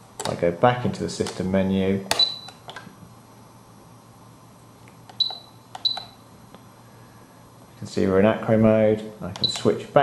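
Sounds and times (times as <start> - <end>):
radio transmitter key beeps: 2.2 - 2.7, 5.1 - 6.2, 9.4 - 9.7.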